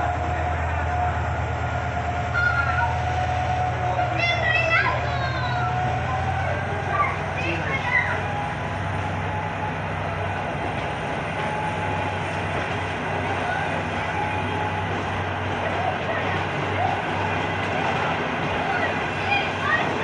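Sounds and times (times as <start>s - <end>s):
train wheels on rails: 0.0s - 20.0s.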